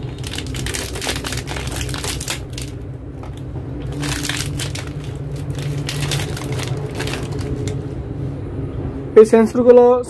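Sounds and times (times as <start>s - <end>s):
foil packet crinkling: 0.0s - 7.9s
steady low hum: 0.0s - 10.0s.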